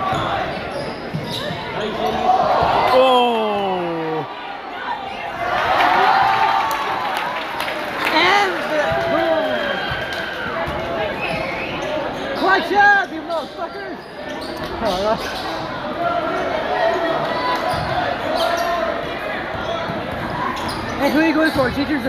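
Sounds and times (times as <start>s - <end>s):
crowd chatter: 0.0s - 22.0s.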